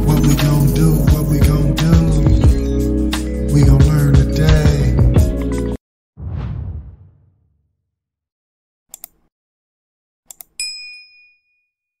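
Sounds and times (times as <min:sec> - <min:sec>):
mouse double click: 0:08.9 - 0:09.3, 0:10.3 - 0:10.6
bell ding: 0:10.6 - 0:11.9.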